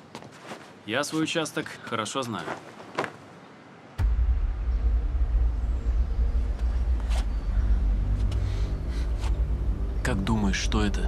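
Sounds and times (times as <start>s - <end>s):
deep low rumble: 4.0s - 11.0s
faint hum: 4.0s - 11.0s.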